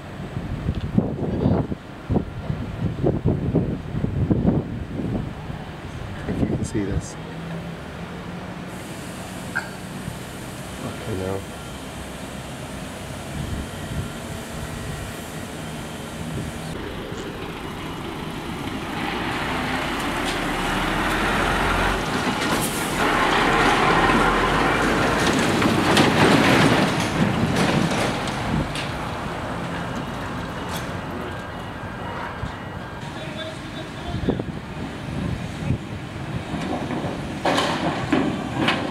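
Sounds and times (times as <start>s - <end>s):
lorry engine and tyre noise: 0.0s - 38.9s.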